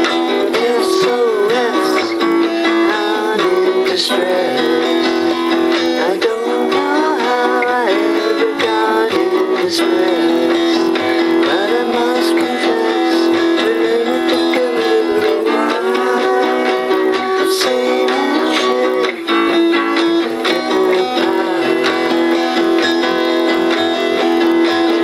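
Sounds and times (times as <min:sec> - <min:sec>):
man singing slow song: 0:00.0 - 0:23.6
strummed guitar: 0:00.0 - 0:25.0.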